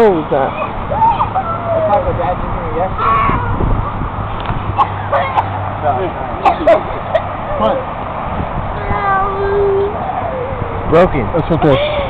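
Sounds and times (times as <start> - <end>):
young boy crying in pain: 11.6 - 12.0.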